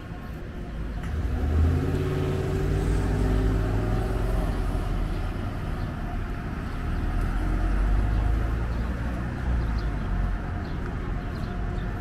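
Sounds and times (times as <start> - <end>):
street traffic: 0.0 - 12.0
car accelerating past: 1.0 - 5.0.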